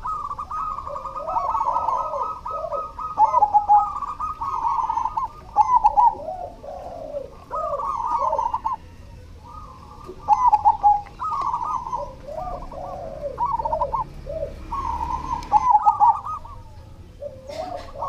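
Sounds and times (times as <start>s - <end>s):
dove cooing: 0.0s - 18.0s.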